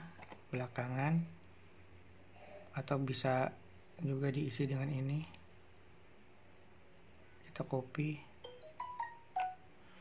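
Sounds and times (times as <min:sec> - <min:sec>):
computer mouse click: 0:05.2 - 0:05.5.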